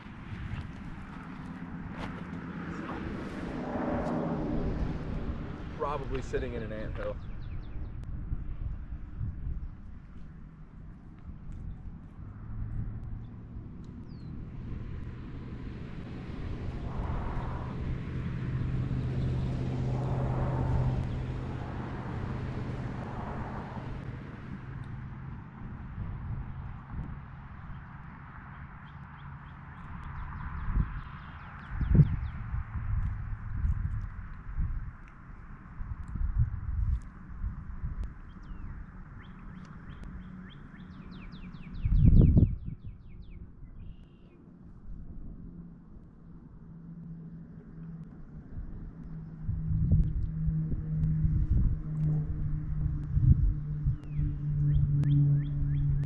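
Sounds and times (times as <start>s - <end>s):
distant engine drone: 0.0s - 56.0s
songbirds chirping: 13.0s - 14.5s, 38.0s - 44.4s
bird singing quick down-slurred notes: 38.3s - 44.4s.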